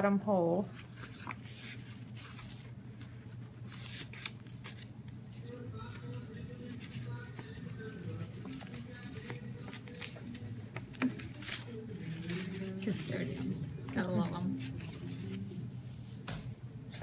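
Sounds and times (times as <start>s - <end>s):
paper rustling and crackling: 0.7s - 17.0s.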